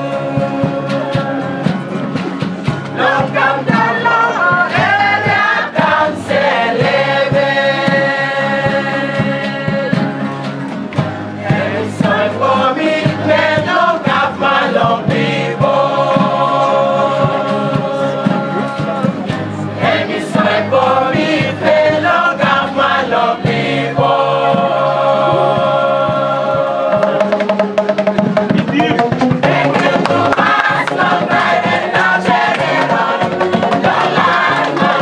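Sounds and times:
choir singing in harmony: 0.0 - 10.4, 11.2 - 27.6, 29.2 - 35.0
bamboo tubes struck in beat: 26.8 - 35.0.

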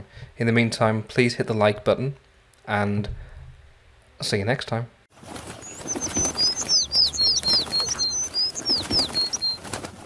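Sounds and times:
wings flapping: 5.1 - 10.0
high bird chirps: 5.6 - 9.7.

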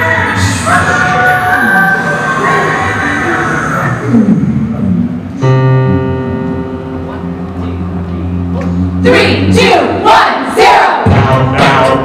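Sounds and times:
big band music: 2.3 - 12.0
full band chord: 5.4 - 9.6.

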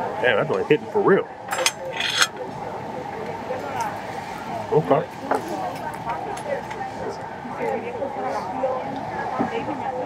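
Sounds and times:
murmur of diners' conversation: 0.0 - 10.0.

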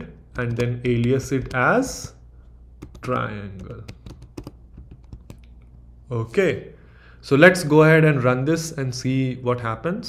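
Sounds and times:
keyboard keys clicking: 0.4 - 1.7, 2.8 - 5.6.

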